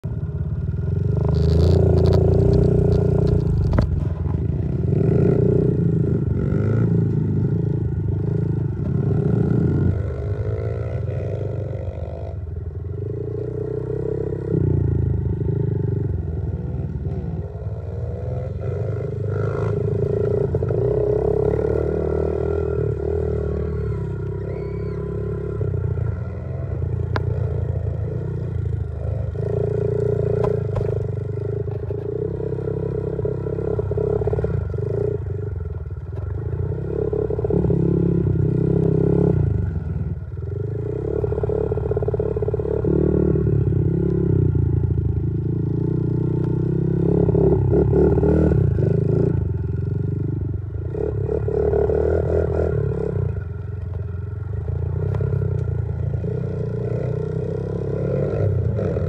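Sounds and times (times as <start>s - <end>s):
motorbike engine revving: 0.4s - 53.6s.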